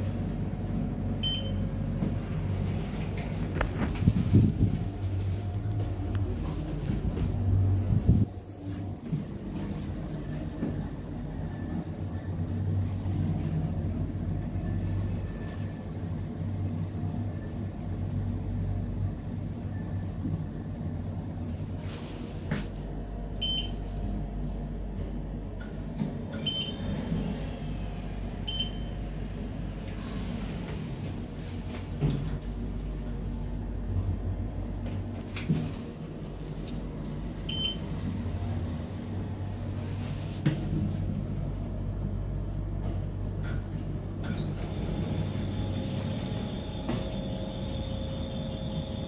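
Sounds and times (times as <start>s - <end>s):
elevator low hum: 0.0s - 49.0s.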